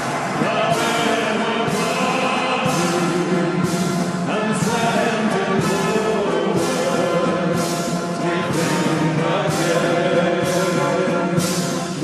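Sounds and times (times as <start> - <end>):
anthem music playing: 0.0 - 12.0
men singing: 0.2 - 12.0.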